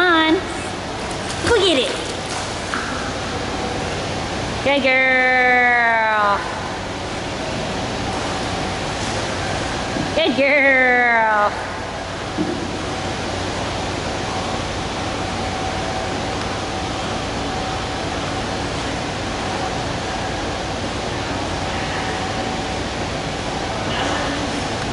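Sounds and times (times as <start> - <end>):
faint steady hum: 0.0 - 24.9
swimming pool water rushing: 0.1 - 24.9.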